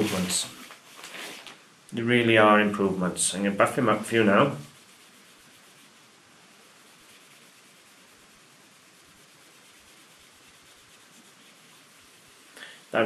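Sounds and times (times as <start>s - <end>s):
cotton pad rubbing silver: 0.0s - 0.6s, 3.2s - 12.5s.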